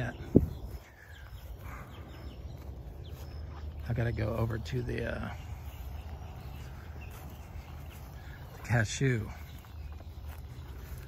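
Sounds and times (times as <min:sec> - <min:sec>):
faint outdoor background: 0:00.0 - 0:11.0
high bird chirps: 0:00.0 - 0:11.0.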